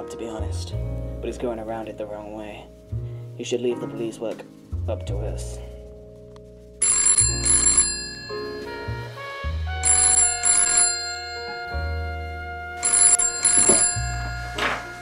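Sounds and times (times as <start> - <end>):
background music: 0.0 - 15.0
telephone ringing: 6.8 - 9.1, 9.8 - 12.0, 12.8 - 15.0.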